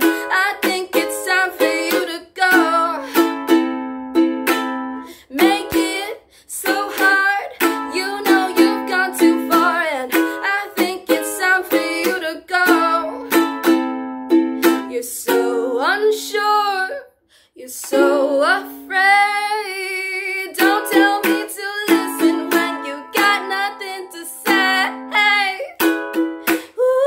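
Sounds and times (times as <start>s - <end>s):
ukulele strumming chords: 0.0s - 16.2s, 17.8s - 19.3s, 20.2s - 26.8s.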